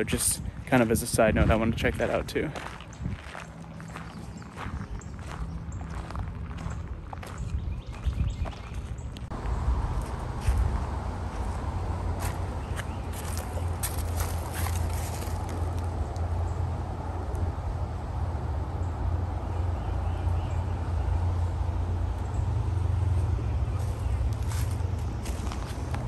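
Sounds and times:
steady low rumble: 0.0 - 26.0
footsteps crunching on leaves: 1.4 - 8.9, 9.9 - 16.0, 23.7 - 26.0.

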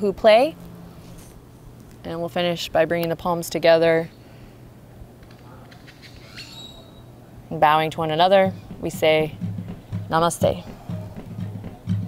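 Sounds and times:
outdoor background noise: 0.0 - 12.0
bird whistle: 6.0 - 7.1.

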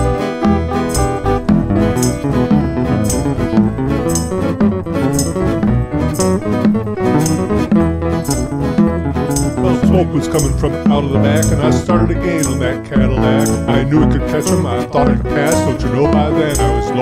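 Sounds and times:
crisp drum beat: 0.0 - 14.7
bass: 0.0 - 17.0
electric guitar lead: 0.0 - 17.0.

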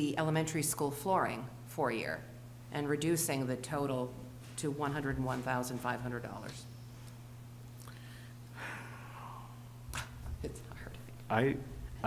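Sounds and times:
low electrical hum: 0.0 - 12.0
person sighing: 7.9 - 9.7.

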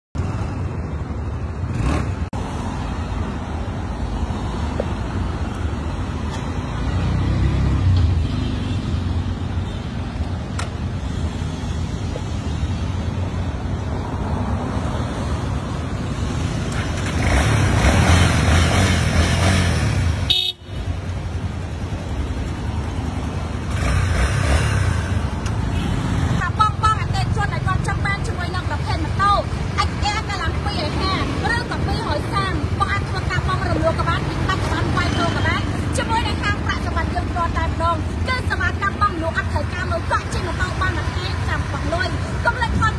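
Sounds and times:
city street traffic: 0.1 - 42.9
horn toot: 20.2 - 20.8.

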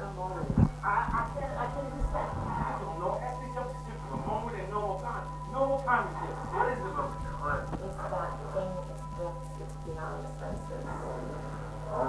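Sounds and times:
electrical hum: 0.0 - 12.0
film voices over loudspeakers: 0.0 - 12.0.

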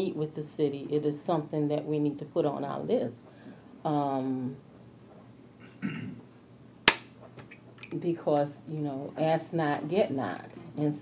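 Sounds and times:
sharp knock: 6.9 - 7.1.

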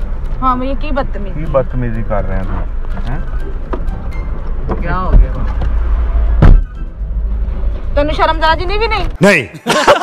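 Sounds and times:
car rumble from inside cabin: 0.0 - 9.2
loud sharp thump: 4.7 - 7.9.

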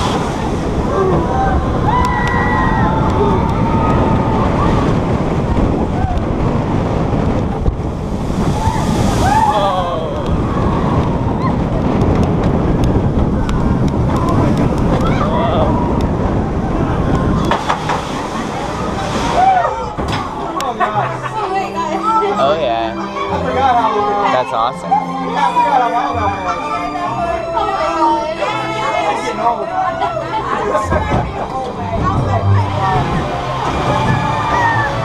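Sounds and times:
wind rushing over microphone: 0.0 - 21.1, 30.7 - 35.0
roller coaster train rumbling: 0.0 - 35.0.

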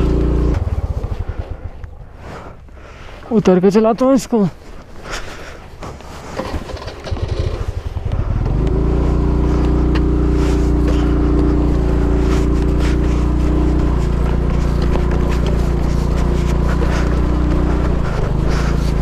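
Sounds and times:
scooter engine running: 0.0 - 2.3, 5.8 - 19.0.

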